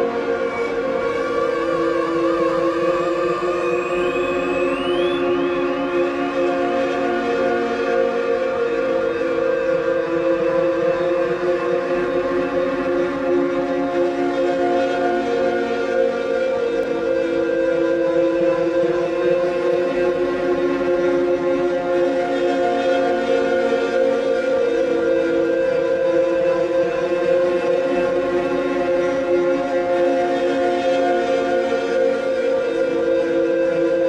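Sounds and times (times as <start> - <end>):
electronic drone of held tones: 0.4 - 7.3.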